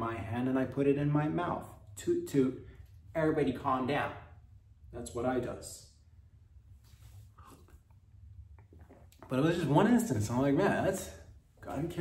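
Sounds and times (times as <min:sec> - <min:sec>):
sipping and swallowing: 0:07.3 - 0:09.3.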